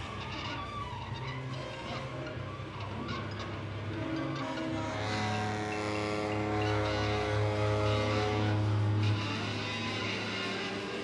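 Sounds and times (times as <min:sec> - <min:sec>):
low drone: 0:00.1 - 0:11.0
saxophone: 0:02.8 - 0:11.0
drums: 0:08.0 - 0:11.0.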